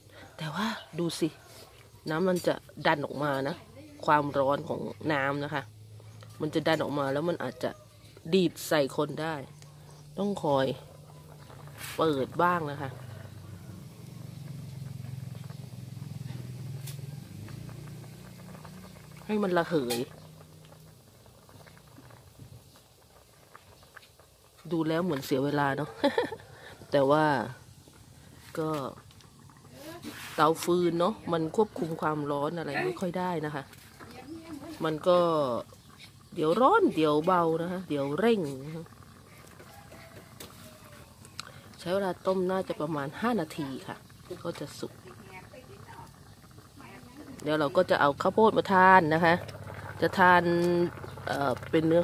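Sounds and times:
water boiling and bubbling: 0.0s - 52.0s
woman speaking softly: 3.1s - 5.6s, 29.7s - 35.4s.

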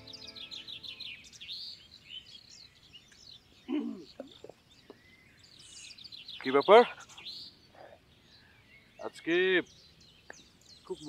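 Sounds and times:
small birds chirping: 0.0s - 11.0s.

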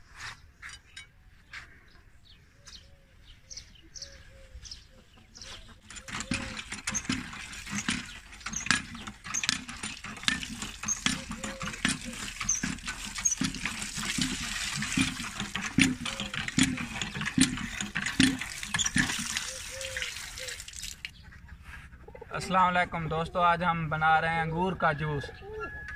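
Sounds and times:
pump handle knocking and creaking: 5.5s - 21.1s
water gushing and splashing: 6.0s - 21.1s.

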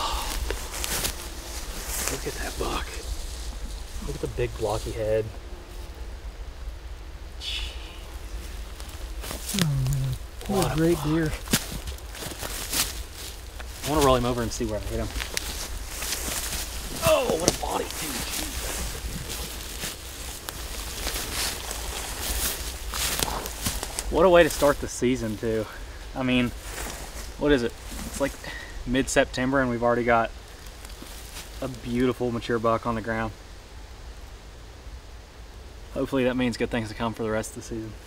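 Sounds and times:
footsteps in forest leaves: 0.0s - 6.0s, 7.6s - 32.3s
steady low rumble: 0.0s - 27.9s
faint hiss: 0.0s - 38.0s
low rumble: 9.4s - 11.4s.

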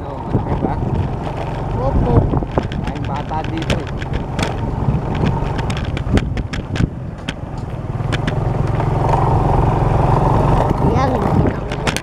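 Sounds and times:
sharp knocks and rattles: 0.0s - 9.4s, 10.2s - 12.0s
vehicle engine running: 0.0s - 12.0s.

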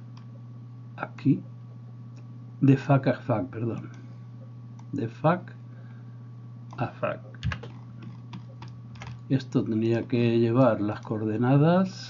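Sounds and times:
steady low hum: 0.0s - 12.0s
computer mouse and keyboard clicks: 6.7s - 10.0s.

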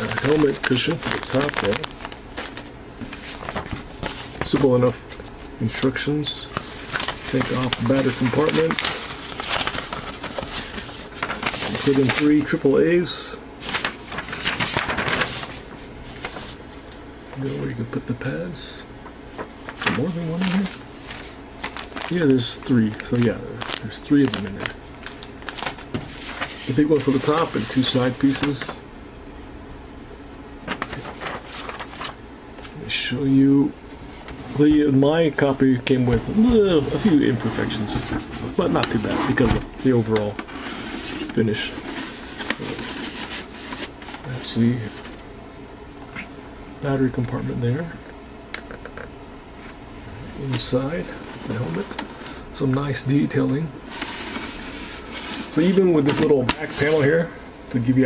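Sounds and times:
paper rustling and crinkling: 0.0s - 12.8s, 13.6s - 16.7s, 19.3s - 28.8s, 30.6s - 32.9s, 34.0s - 45.2s, 53.3s - 57.2s.

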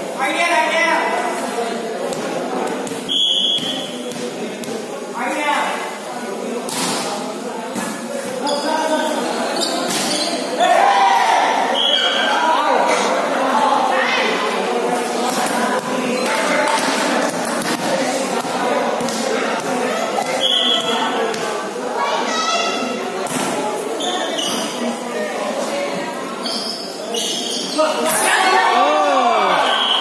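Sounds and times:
voices and shouts of players: 0.0s - 30.0s.

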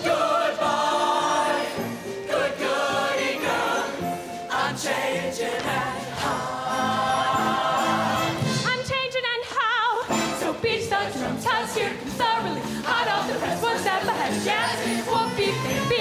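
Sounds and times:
choir singing held chords: 0.0s - 8.6s, 10.1s - 16.0s.

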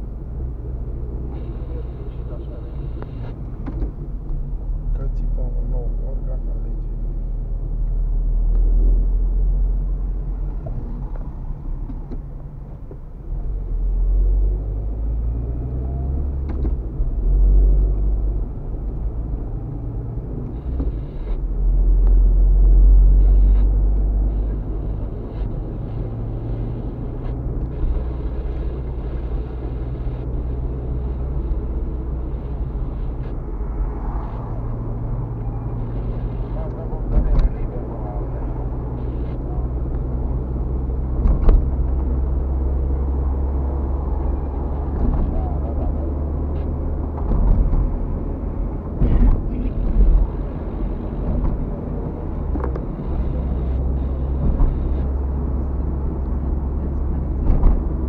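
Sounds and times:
engine and tyres droning: 0.0s - 58.0s.

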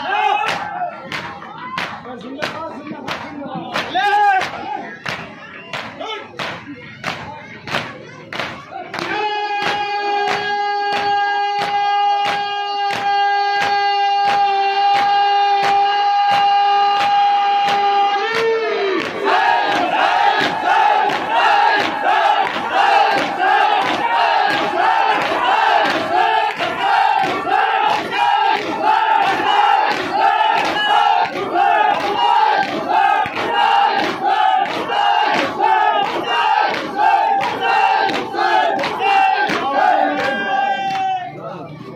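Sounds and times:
crowd of men chanting: 0.0s - 5.2s, 6.0s - 41.3s
hands beating chests: 0.4s - 40.5s.

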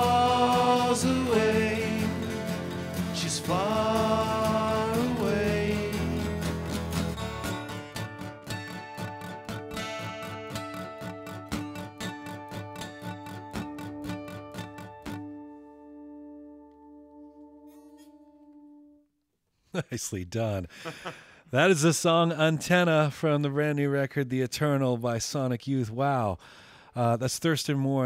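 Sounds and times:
acoustic guitars strumming: 0.0s - 19.0s.

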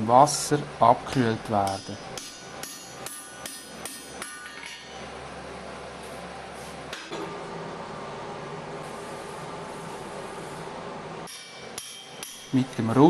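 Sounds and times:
hammer striking chisel on metal: 1.6s - 5.0s, 11.2s - 12.7s.

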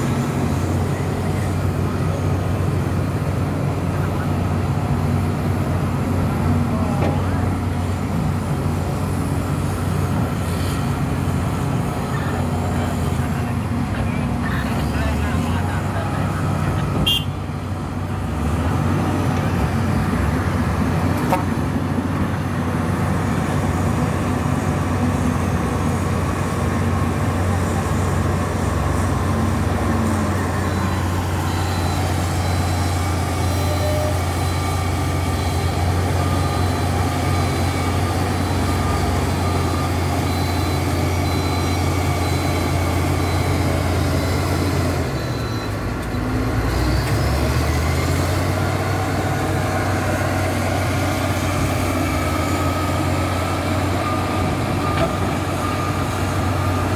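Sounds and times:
diesel machinery engine drone: 0.0s - 56.9s.

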